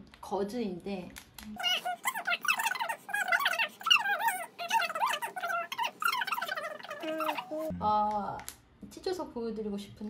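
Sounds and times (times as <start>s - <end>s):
sped-up woman talking: 0.2s - 10.0s.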